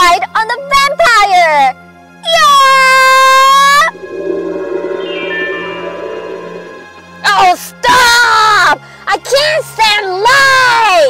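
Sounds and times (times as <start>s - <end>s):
soft musical tones: 3.5s - 7.7s.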